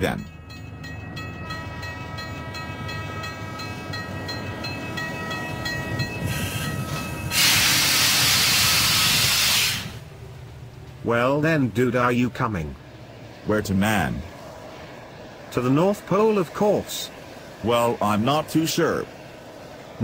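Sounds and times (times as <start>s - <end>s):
train rumbling: 0.0s - 20.0s
loud hiss of steam: 6.3s - 10.1s.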